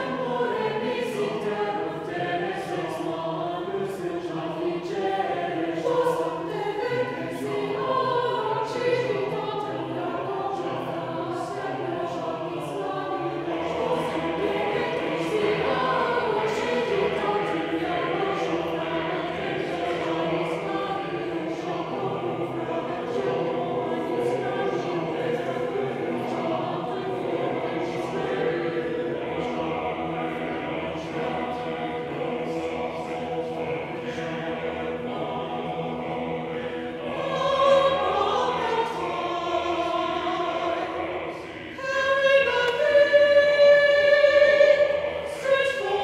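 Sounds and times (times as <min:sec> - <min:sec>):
mixed choir singing unaccompanied: 0:00.0 - 0:46.0.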